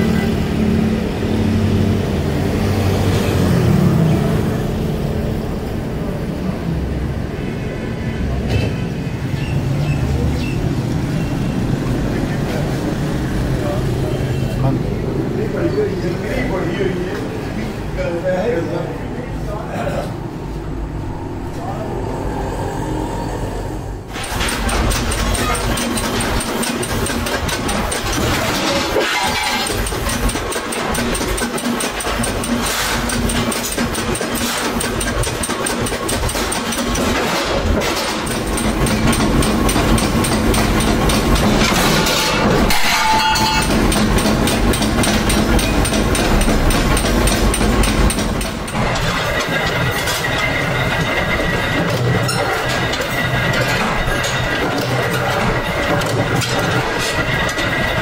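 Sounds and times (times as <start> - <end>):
machinery knocks: 24.1 - 58.0.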